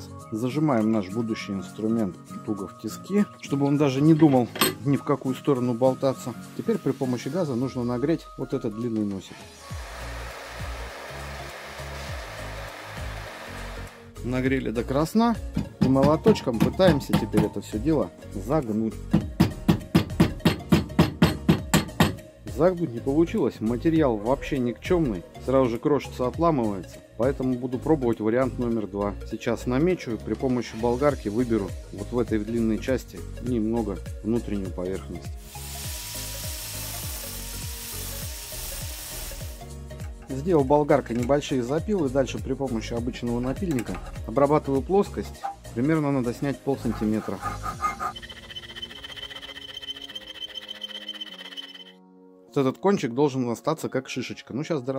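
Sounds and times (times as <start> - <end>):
background music: 0.0 - 54.9
gas torch hissing: 9.4 - 14.1, 35.4 - 39.7
angle grinder cutting steel: 9.7 - 14.0, 47.4 - 51.9
music with regular beat: 15.4 - 17.6, 19.0 - 22.3.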